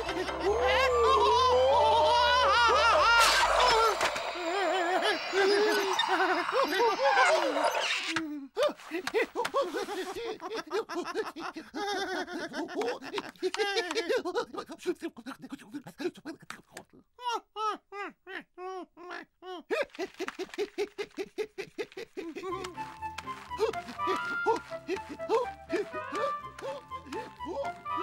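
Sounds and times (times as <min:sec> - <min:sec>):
background music: 0:00.0 - 0:07.8, 0:22.3 - 0:28.0
cartoon characters laughing and babbling: 0:00.0 - 0:23.0, 0:23.6 - 0:28.0.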